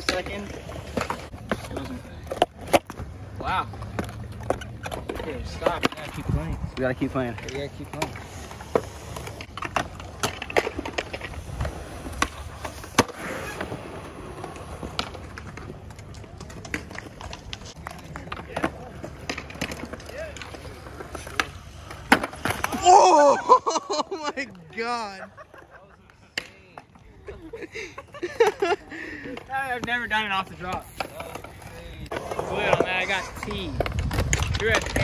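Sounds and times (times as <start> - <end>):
skateboard clacking: 0.0 - 23.2, 24.6 - 27.4, 28.2 - 35.0
skateboard wheels rolling on concrete: 0.0 - 35.0
person crying out: 22.7 - 23.7.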